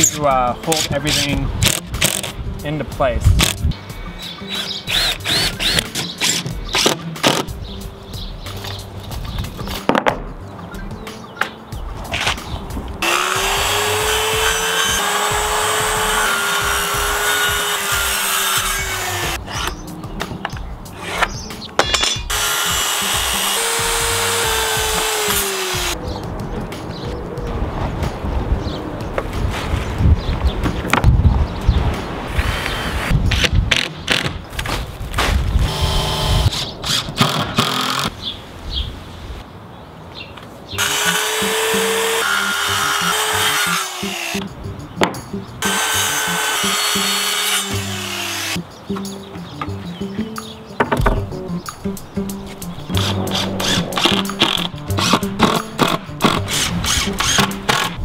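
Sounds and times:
background music: 0.0s - 34.5s, 40.7s - 58.0s
circular saw cutting plywood: 4.5s - 6.5s, 13.0s - 19.7s, 22.3s - 26.0s, 40.8s - 44.4s, 45.6s - 48.6s, 52.9s - 58.0s
cordless drill driving screws: 4.5s - 7.4s, 35.7s - 38.1s, 54.0s - 57.9s.

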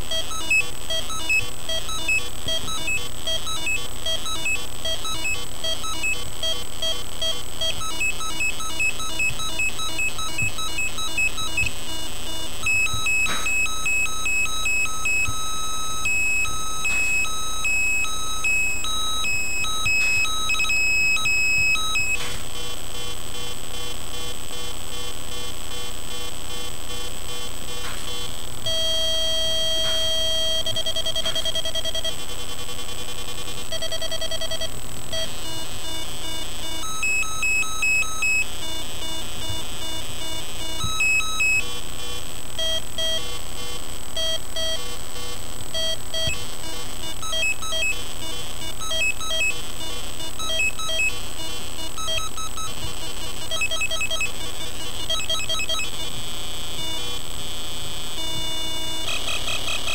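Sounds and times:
buzzy square-wave synth beeps: 0.1s - 22.3s, 23.0s - 32.2s, 33.7s - 41.7s, 44.2s - 59.9s.

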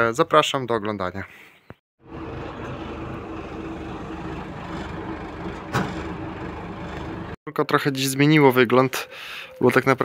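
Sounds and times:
truck engine idling: 2.0s - 7.4s.

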